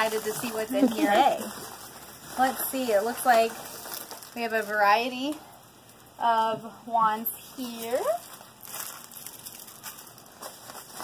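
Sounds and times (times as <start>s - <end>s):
plastic bag crinkling: 0.0s - 6.2s, 7.4s - 11.0s
paper envelope rustling: 7.7s - 11.0s.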